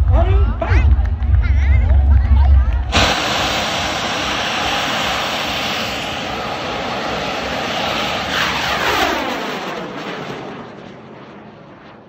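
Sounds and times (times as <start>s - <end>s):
rocket motor rushing hiss: 2.9s - 8.9s.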